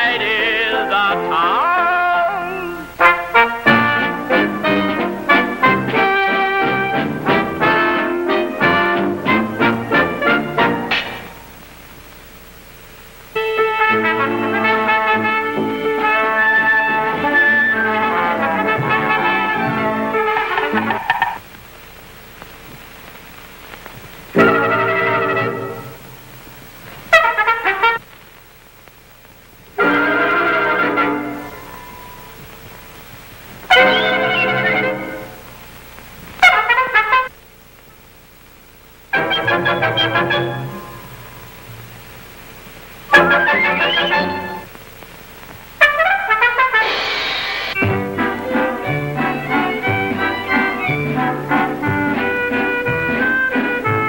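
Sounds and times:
film soundtrack hiss and crackle: 0:00.0 - 0:54.0
brass-led orchestra music: 0:03.0 - 0:11.0, 0:13.4 - 0:20.9, 0:24.4 - 0:26.0, 0:27.1 - 0:28.0, 0:29.8 - 0:32.0, 0:33.7 - 0:35.4, 0:36.4 - 0:37.3, 0:39.1 - 0:41.0, 0:43.1 - 0:44.6, 0:45.8 - 0:54.0
faint clicks: 0:22.3 - 0:24.3
cymbal crash: 0:46.7 - 0:48.2.

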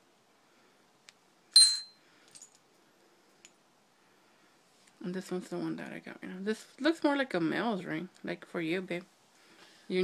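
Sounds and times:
metal ring clinking on hard surface: 0:01.5 - 0:02.6.

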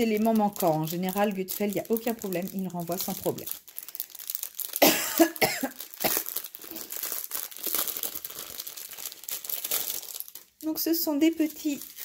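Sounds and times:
plastic bags crinkling: 0:00.0 - 0:12.0
person coughing: 0:04.8 - 0:06.3.

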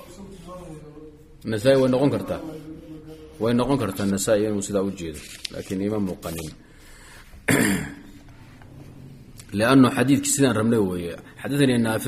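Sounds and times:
man clearing throat: 0:07.5 - 0:08.2.

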